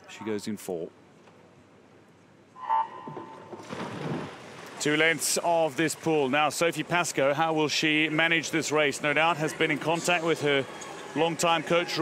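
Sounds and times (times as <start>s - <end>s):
swimmers diving splash: 2.6s - 5.8s.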